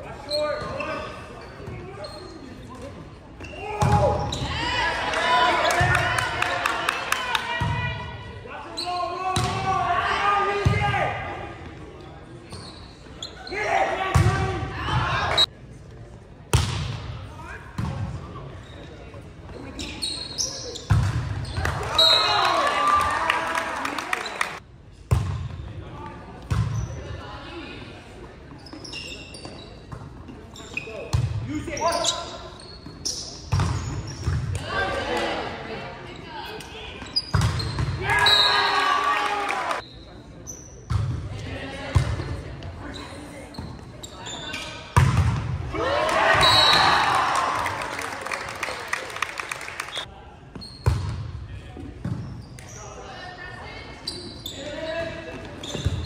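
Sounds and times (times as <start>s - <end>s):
players shouting: 45.7s - 48.4s.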